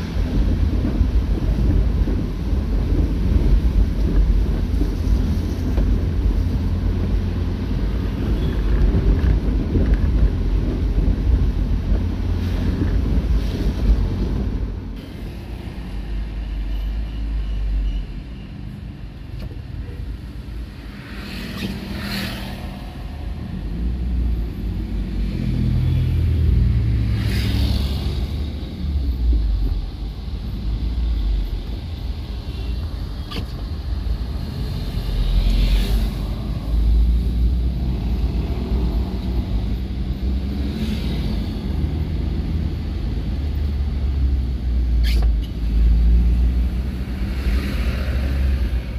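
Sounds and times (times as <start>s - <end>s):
car engine and road rumble: 0.0s - 48.9s.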